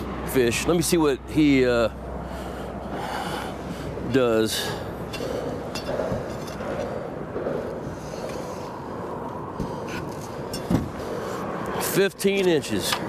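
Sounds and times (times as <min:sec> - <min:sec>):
wind: 0:00.0 - 0:13.0.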